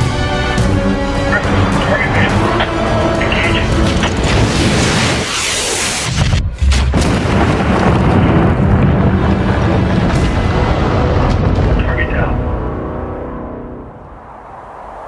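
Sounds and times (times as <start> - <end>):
cinematic music: 0.0 - 14.6
low rumble: 6.1 - 15.0
rising whoosh: 13.8 - 15.0.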